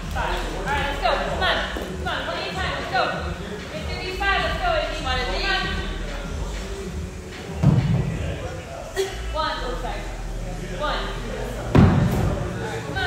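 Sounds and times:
background music: 0:00.0 - 0:13.0
heavy thuds on rubber floor: 0:11.7 - 0:12.4.

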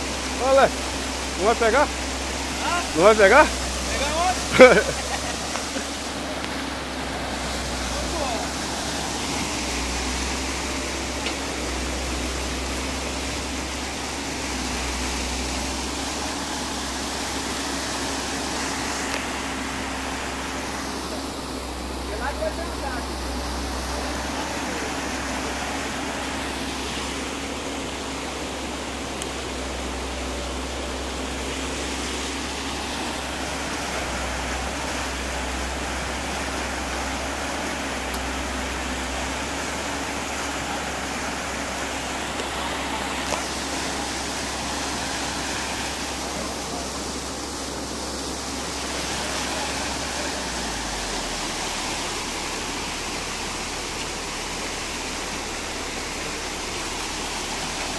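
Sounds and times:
excavator diesel engine humming: 0:00.0 - 0:57.9
muddy water rushing: 0:00.0 - 0:57.9.

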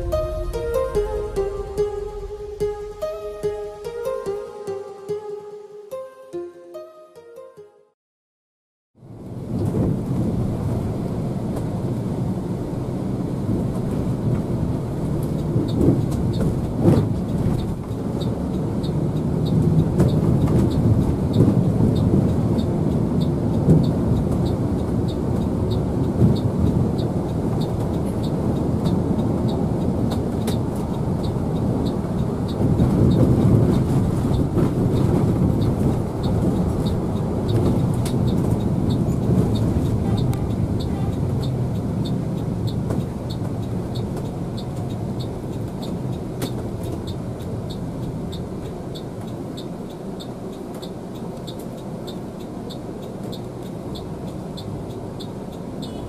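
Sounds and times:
coach engine and road rumble: 0:00.0 - 0:05.1, 0:09.0 - 0:56.0
light ticking: 0:15.2 - 0:56.0.

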